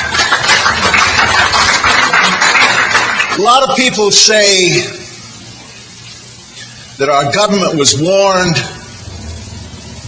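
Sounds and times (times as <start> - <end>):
audience applauding: 0.0 - 3.8.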